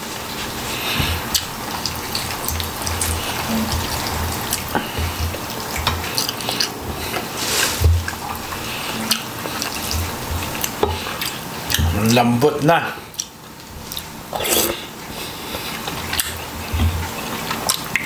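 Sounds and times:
chewing clicks and thumps: 1.0 - 12.0, 15.5 - 18.0.

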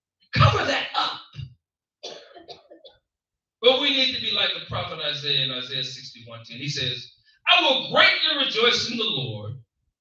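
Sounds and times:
person clearing throat: 2.0 - 3.0.

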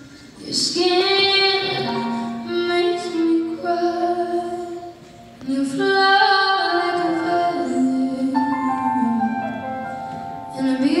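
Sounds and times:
woman singing through a pa: 0.4 - 9.4, 10.4 - 11.0.

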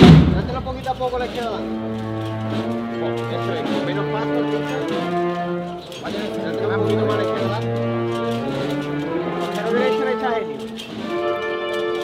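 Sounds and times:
wind band playing slow march: 0.0 - 12.0.

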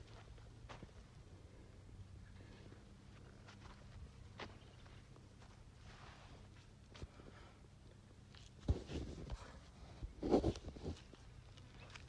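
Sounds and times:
footsteps on dry grass: 3.1 - 7.2.

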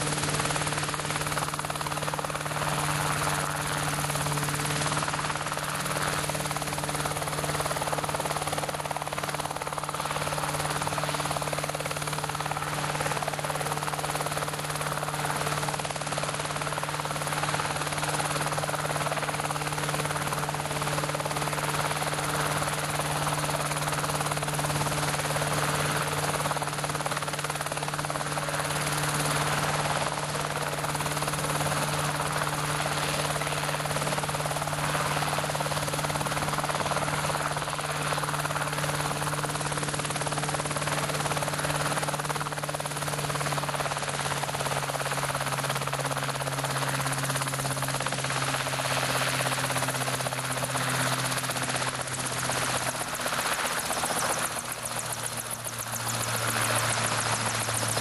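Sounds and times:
helicopter hovering: 0.0 - 58.0.

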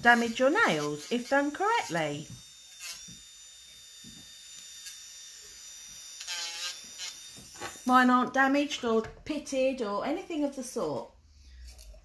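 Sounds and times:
electric nail drill whine: 0.0 - 8.6.

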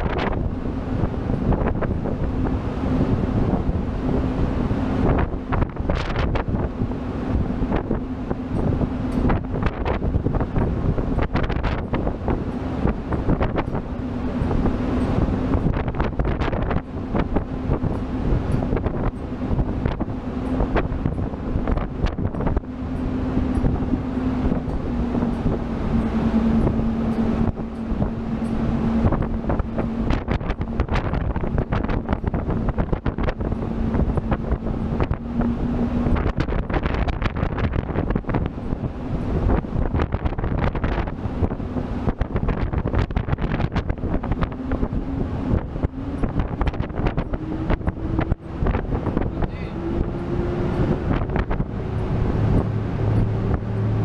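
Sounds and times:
boat engines humming: 0.0 - 54.0
wind buffeting microphone: 0.0 - 54.0.

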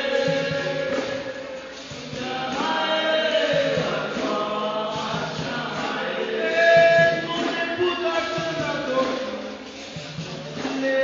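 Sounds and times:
voices singing a chant: 0.0 - 11.0.

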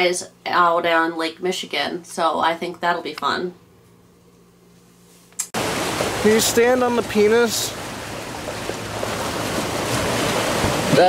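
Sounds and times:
waves lapping against rocks: 5.6 - 11.0.

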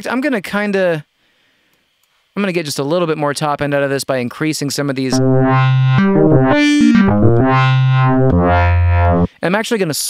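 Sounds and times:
synthesizer notes: 5.1 - 9.3.

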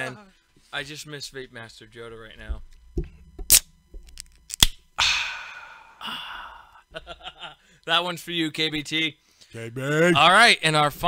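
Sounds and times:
sharp click: 3.4 - 4.8
breathy sigh into microphone: 5.0 - 6.8.

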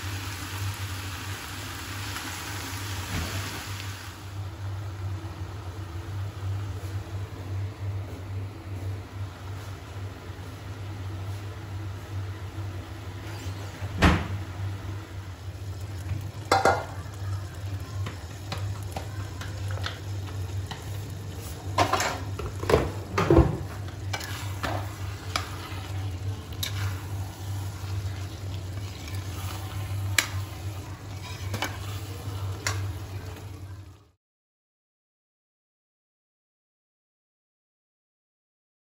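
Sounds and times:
light sizzle: 0.0 - 34.2
metal spatula scraping a pan: 13.2 - 13.7, 24.1 - 25.9, 26.6 - 27.7, 28.8 - 32.8.

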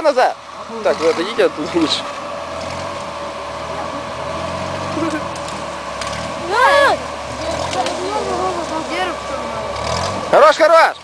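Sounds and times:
engine running under load: 0.0 - 11.0
man shouting: 6.5 - 7.0.

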